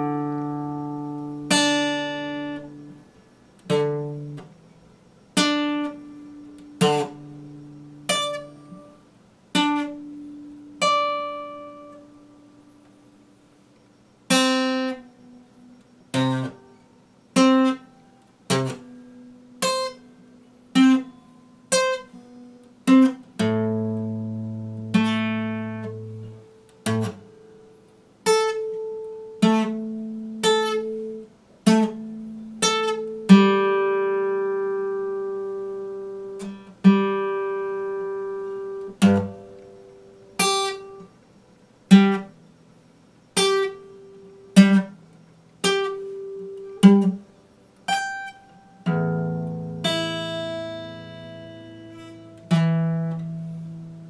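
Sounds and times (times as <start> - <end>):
acoustic guitar plucked slowly: 0.0 - 54.0.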